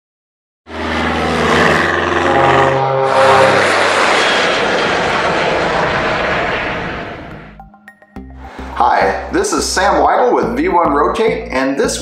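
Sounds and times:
airplane engine roar: 0:00.7 - 0:10.9.

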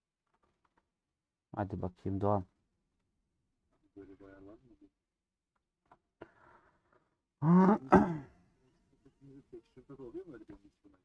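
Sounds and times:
man's wordless vocal outburst: 0:07.4 - 0:08.3.

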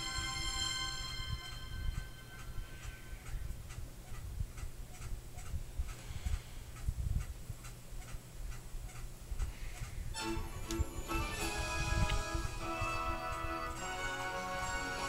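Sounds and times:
steady ticking: 0:00.0 - 0:15.0.

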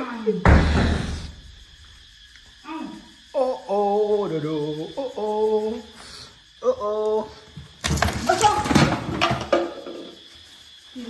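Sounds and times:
heavy thump: 0:00.4 - 0:01.8.

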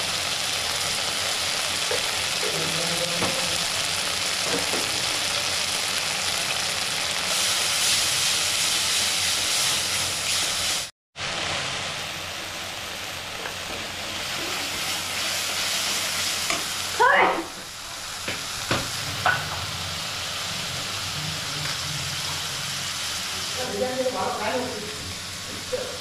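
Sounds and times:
paste sizzling in oil: 0:00.0 - 0:26.0.

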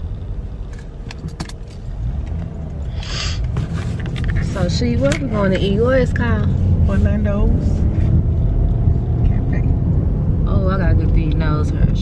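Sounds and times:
low rumble inside car: 0:00.0 - 0:12.0.

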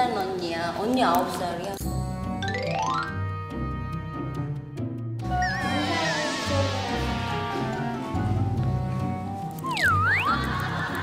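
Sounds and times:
high warbling sound effect: 0:05.2 - 0:08.5.

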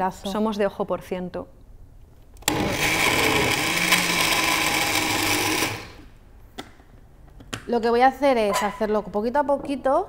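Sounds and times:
blender running: 0:02.4 - 0:06.1.

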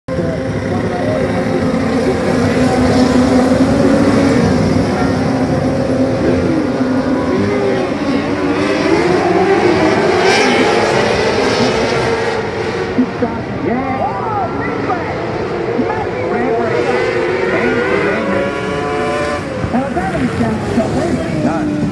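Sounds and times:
racing car engines: 0:00.1 - 0:21.9.

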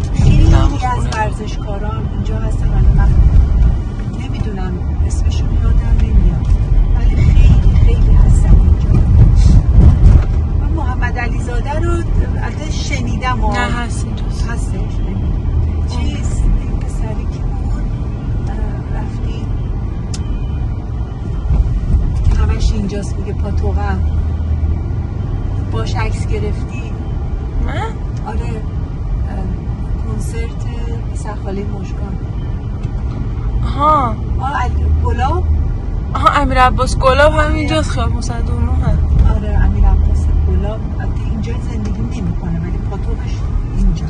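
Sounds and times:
indistinct talking: 0:00.0 - 0:03.2, 0:10.6 - 0:17.9
engine and road rumble: 0:00.0 - 0:44.0.

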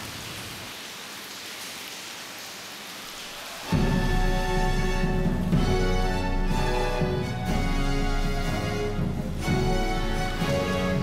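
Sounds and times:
hiss of water: 0:00.0 - 0:06.0
baroque orchestra playing: 0:03.8 - 0:11.0.

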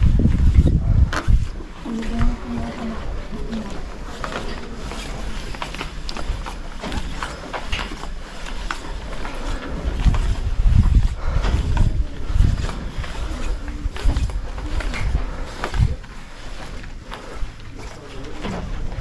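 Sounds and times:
wind buffeting microphone: 0:00.0 - 0:04.1, 0:09.6 - 0:16.1
footsteps on steel grate: 0:00.0 - 0:19.0.

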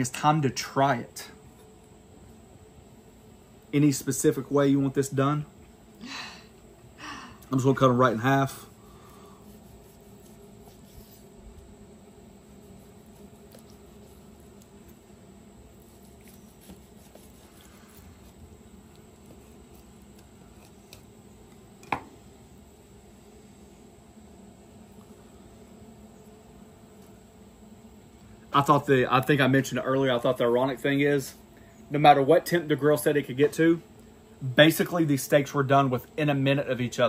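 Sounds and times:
low steady hum: 0:00.0 - 0:37.0
knife slicing steak: 0:12.6 - 0:15.0, 0:15.8 - 0:18.4.

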